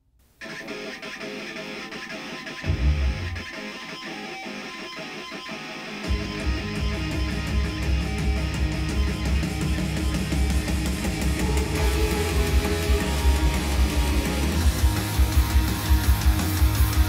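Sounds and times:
heavy rock music: 0.4s - 17.0s.

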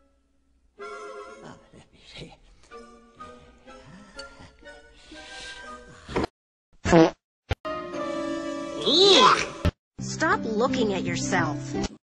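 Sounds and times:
background music: 0.0s - 6.2s, 7.7s - 12.0s.

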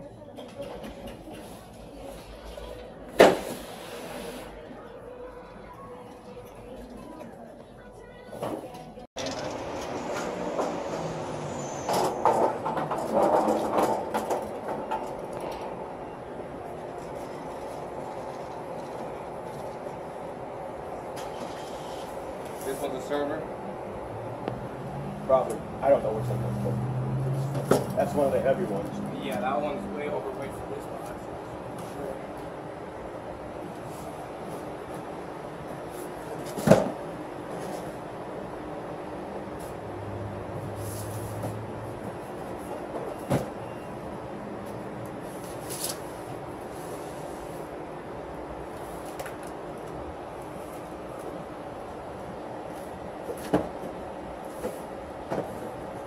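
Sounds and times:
outdoor background noise: 0.0s - 56.0s.

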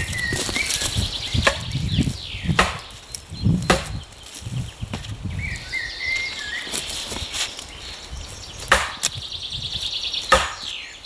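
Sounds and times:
wooden club knocking wooden stake: 1.4s - 1.8s, 2.5s - 2.9s, 3.7s - 4.0s, 8.6s - 9.1s, 10.3s - 10.7s.

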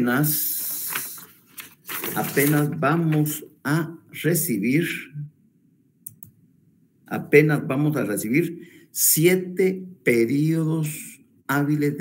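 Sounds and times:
man speaking: 0.0s - 1.2s, 2.1s - 5.3s, 7.1s - 12.0s
faint sharp clicks: 6.0s - 6.4s.

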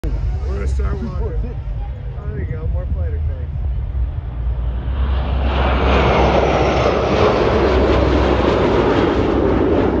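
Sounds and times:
jet fighters flying past: 3.2s - 10.0s.

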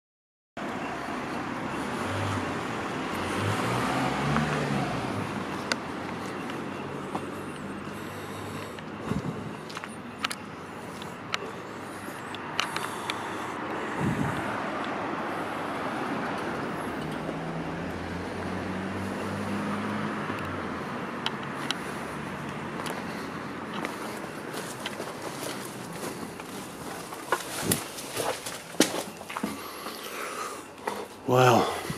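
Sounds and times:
road traffic passing: 0.6s - 31.9s.

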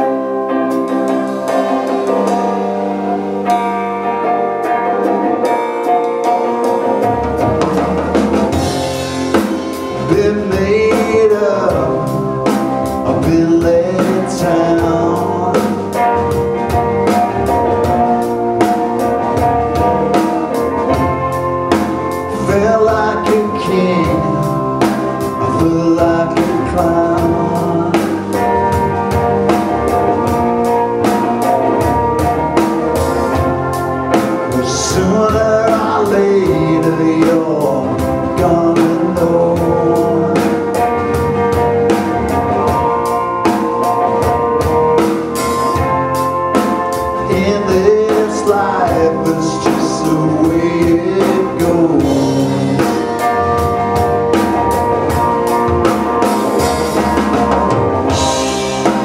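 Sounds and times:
keyboard playing: 0.0s - 59.0s
live rock band: 0.0s - 59.0s
man singing: 9.7s - 16.4s, 22.2s - 28.9s, 34.3s - 41.0s, 47.0s - 53.7s, 58.1s - 59.0s.

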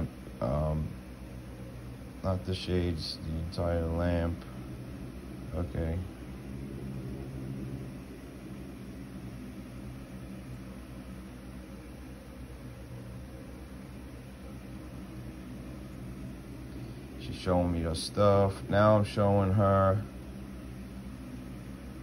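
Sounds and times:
room hiss: 0.0s - 22.0s
steady low hum: 0.0s - 22.0s.

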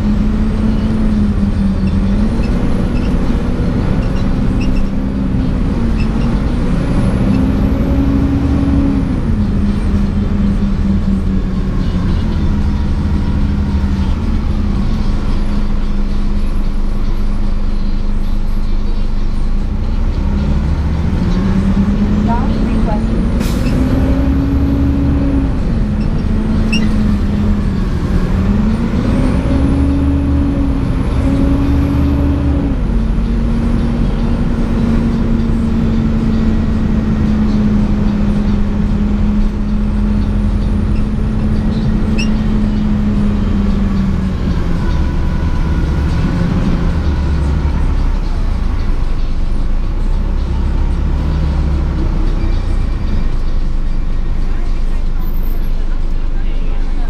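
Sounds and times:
bus engine droning: 0.0s - 57.0s.

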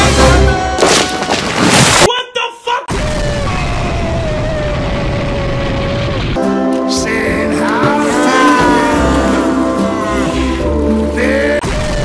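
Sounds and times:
orchestral film music: 0.0s - 0.7s, 6.4s - 11.6s
rumbling explosion boom: 2.9s - 6.4s.

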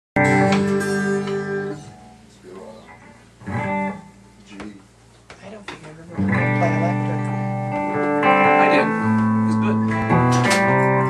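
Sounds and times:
guitar chords ringing: 0.2s - 5.0s, 5.9s - 11.0s.

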